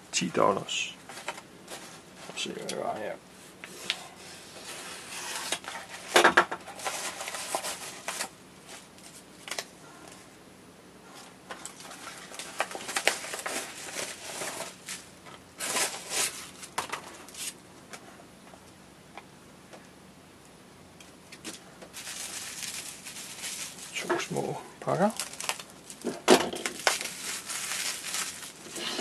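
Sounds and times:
paper and plastic rustling: 1.0s - 3.0s, 3.7s - 10.3s, 11.1s - 17.6s, 21.4s - 29.0s
bubble wrap handled: 11.2s - 17.6s, 21.3s - 29.0s.

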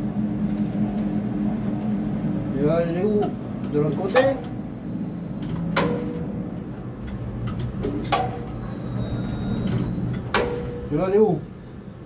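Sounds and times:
crane low hum: 0.0s - 12.0s.

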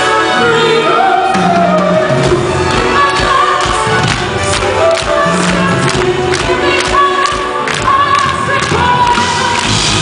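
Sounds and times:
choir backing: 0.0s - 9.8s.

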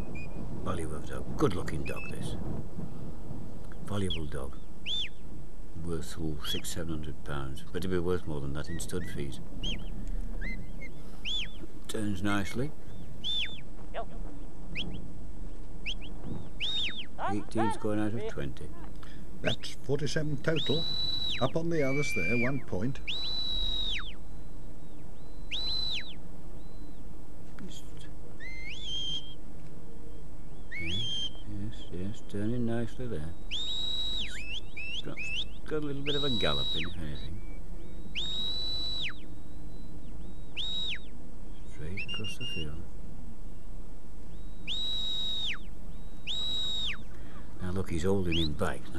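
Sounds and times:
shepherd's whistle commands: 20.5s - 24.1s, 30.7s - 31.4s, 33.5s - 37.2s, 38.2s - 39.2s, 40.6s - 41.0s, 44.5s - 45.6s, 46.3s - 47.0s.

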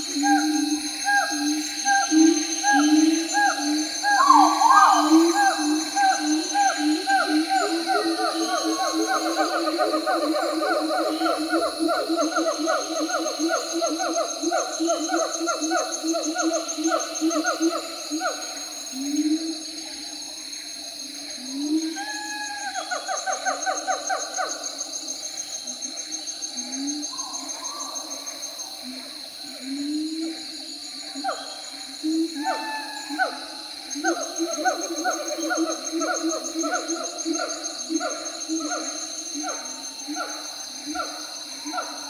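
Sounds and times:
monkeys hooting and whooping: 0.2s - 18.4s, 32.1s - 42.0s.

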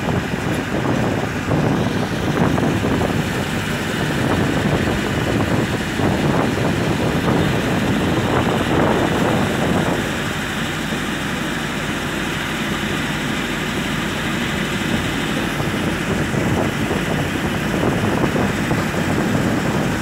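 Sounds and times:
wind noise: 0.0s - 11.7s, 13.7s - 20.0s
train wheels rumbling on rails: 0.0s - 20.0s.

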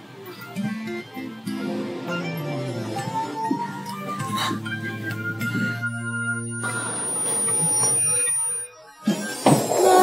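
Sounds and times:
high-pitched ringing tone: 5.4s - 10.0s.

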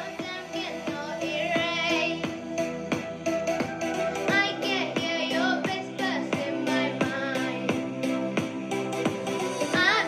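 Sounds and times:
boy singing: 0.0s - 2.3s, 4.3s - 7.8s, 9.7s - 10.0s
accompaniment with steady beat: 0.0s - 10.0s.

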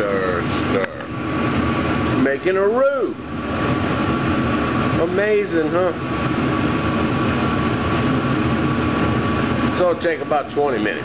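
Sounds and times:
exhaust fan running: 0.0s - 11.0s.

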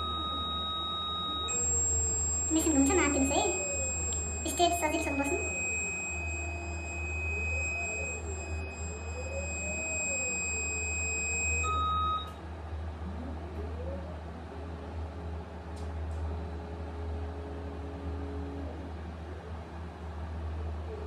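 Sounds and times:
short low beep: 0.0s - 12.3s
high-pitched warning tone: 0.0s - 12.4s
low hum of rotating arm: 0.0s - 15.6s.

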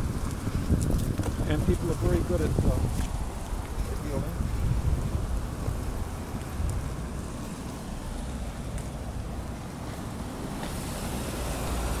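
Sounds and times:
street noise hiss: 0.0s - 12.0s
wind buffeting microphone: 0.0s - 12.0s.

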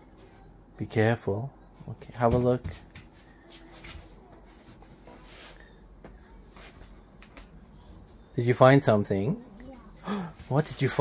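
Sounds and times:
clothes and cushions rustling: 1.8s - 8.4s, 9.2s - 11.0s.

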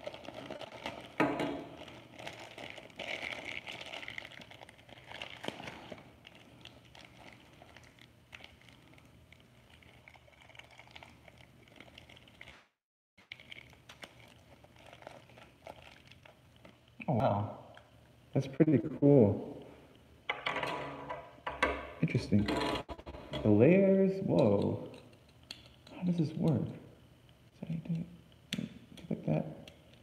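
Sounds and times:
plastic packaging crinkling: 0.0s - 17.0s.

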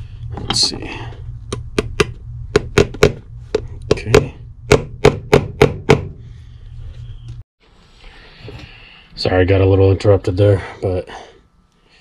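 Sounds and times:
hammer tapping nails: 3.9s - 6.1s.

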